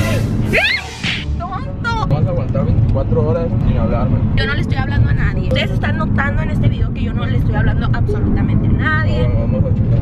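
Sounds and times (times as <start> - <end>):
woman's voice: 4.4 - 9.2.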